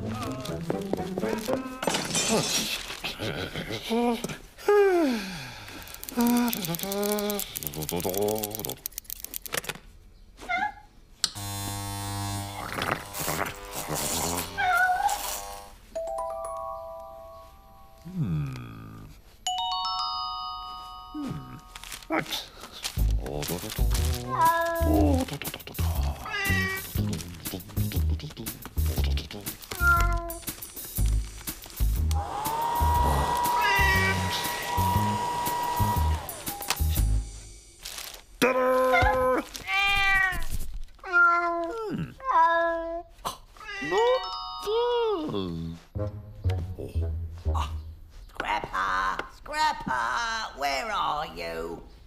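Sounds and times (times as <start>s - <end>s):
electric clippers buzzing: 11.2s - 15.8s, 31.8s - 36.9s
rough shearing noise: 11.2s - 15.8s, 30.4s - 38.2s
cat crying: 14.5s - 15.2s, 24.3s - 25.2s, 26.2s - 26.9s, 29.7s - 30.5s, 33.0s - 34.3s, 38.9s - 43.0s, 43.6s - 44.2s
hair dryer whining: 32.0s - 36.9s.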